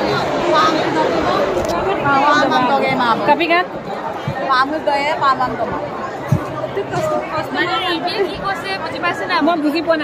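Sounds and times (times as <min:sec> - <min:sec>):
many women talking: 0:00.0 - 0:10.0.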